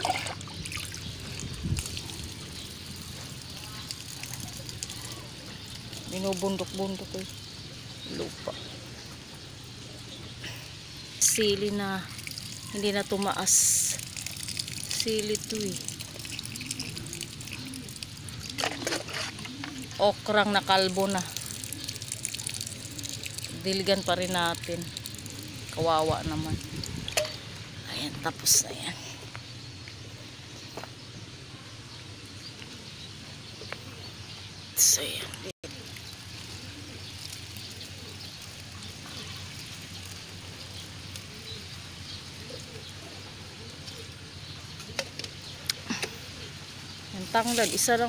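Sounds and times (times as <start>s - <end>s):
water splashing onto leaves and soil: 0.0s - 29.6s, 34.8s - 48.0s
dove cooing: 16.1s - 20.0s, 21.3s - 23.6s, 24.9s - 25.8s, 35.6s - 39.4s, 40.0s - 46.8s.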